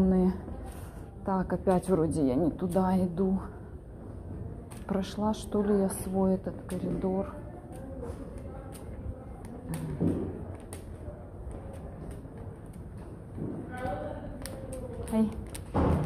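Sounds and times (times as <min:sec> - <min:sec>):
people's voices: 0:00.0 - 0:16.0
footsteps on tiled floor: 0:04.0 - 0:16.0.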